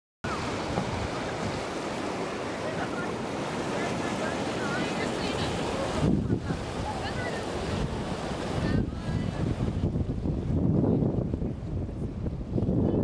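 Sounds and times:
river rushing: 0.2 - 13.0
wind on microphone: 0.3 - 2.0, 2.7 - 13.0
water lapping at sand: 0.3 - 13.0.

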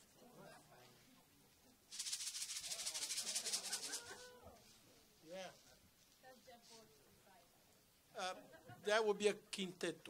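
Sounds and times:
percussion shaker: 1.9 - 7.0
faint talk: 2.9 - 5.8.

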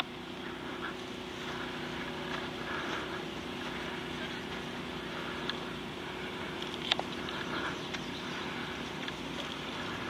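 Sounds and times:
constant hiss: 0.0 - 10.0
motor hum: 0.0 - 10.0.

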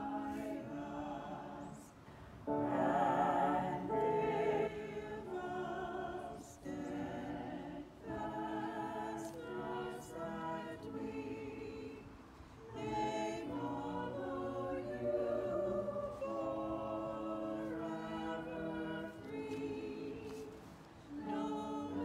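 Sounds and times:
vocalists singing together: 0.0 - 22.0.

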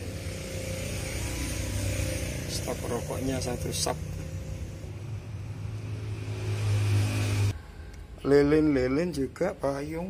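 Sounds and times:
vehicle engine running: 0.0 - 7.6.

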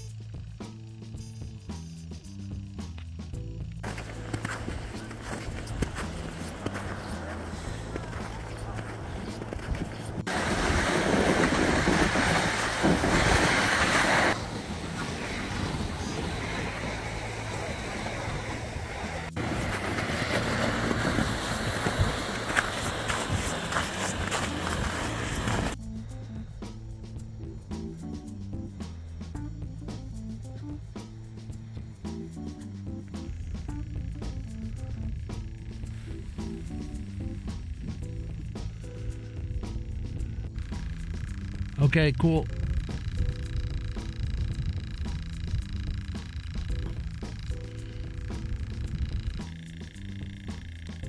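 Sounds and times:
background music with low tones: 0.0 - 51.0
rushing noise: 10.1 - 25.8.

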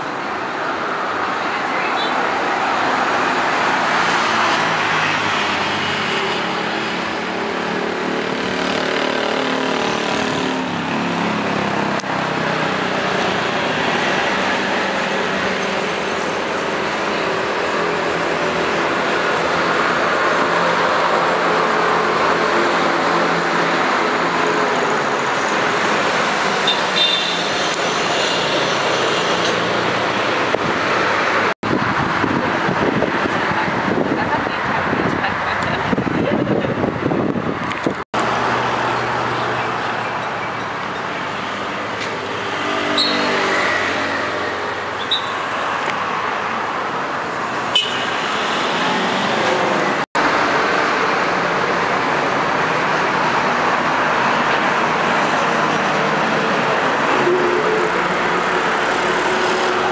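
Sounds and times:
road traffic noise: 0.0 - 59.9
passing vehicle engine: 27.4 - 59.9.

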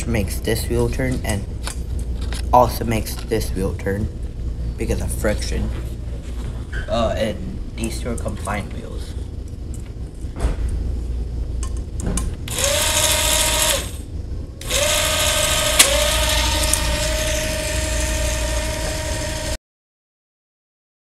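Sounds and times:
motor whine: 12.5 - 19.6.

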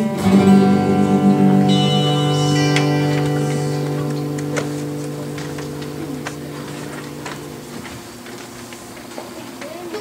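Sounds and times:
piano and guitar chord: 0.0 - 8.2.

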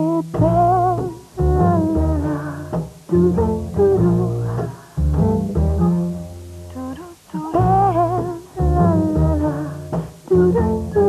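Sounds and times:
plucked double bass: 0.0 - 11.0.

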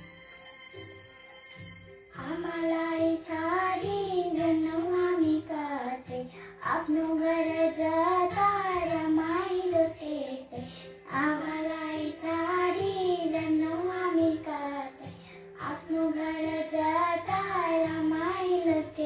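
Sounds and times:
child singing: 2.1 - 19.0.

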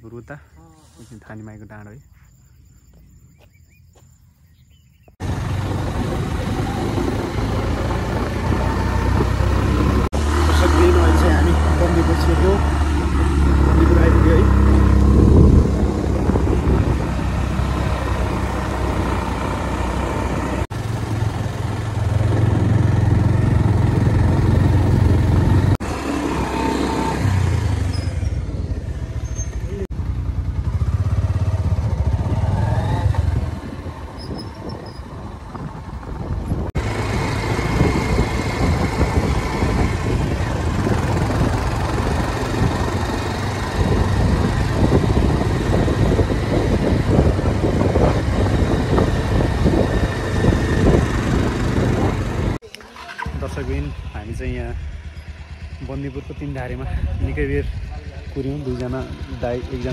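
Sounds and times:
motorcycle engine rumble: 5.0 - 59.9.

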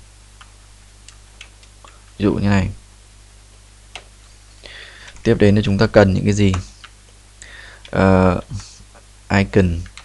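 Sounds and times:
low electrical hum: 0.0 - 10.0
computer keyboard keystrokes: 0.4 - 2.0, 9.8 - 10.0.

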